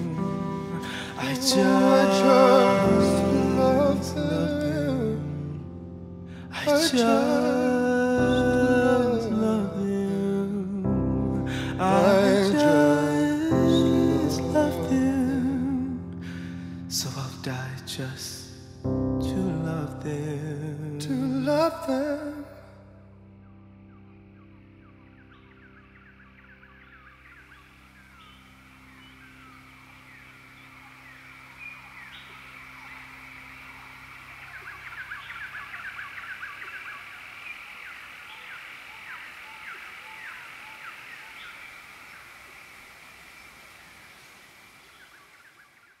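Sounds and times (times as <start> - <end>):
birds chirping: 0.0 - 5.4, 23.0 - 46.0.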